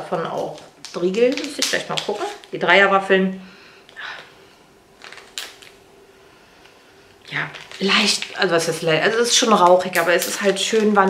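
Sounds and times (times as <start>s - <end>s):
plastic bag crinkle: 0.0s - 2.9s, 3.8s - 6.0s, 6.6s - 11.0s
faint steady hum: 0.0s - 11.0s.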